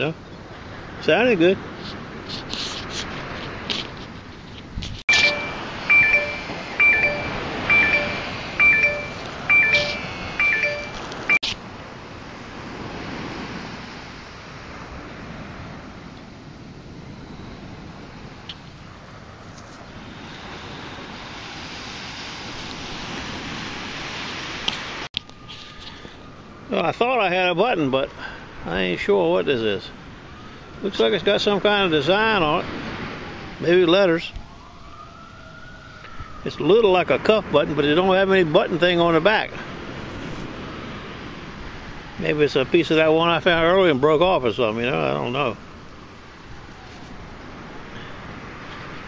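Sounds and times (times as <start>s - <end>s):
wind: 0.0s - 49.0s
metal detector beeping: 5.1s - 11.6s
surf: 5.1s - 16.2s.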